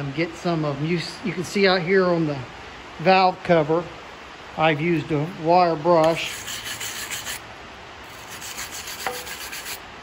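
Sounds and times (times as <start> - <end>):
wire brush scrubbing metal: 6.0 - 7.4, 8.0 - 9.8.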